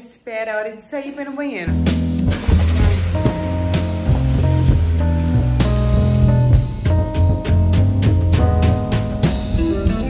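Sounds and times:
background music with deep bass: 1.8 - 10.0.

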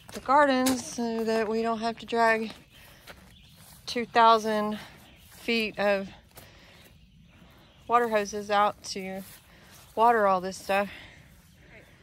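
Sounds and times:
faint outdoor background: 0.0 - 12.0
woman talking: 0.1 - 2.6, 3.9 - 6.2, 7.9 - 9.3, 10.0 - 11.1.

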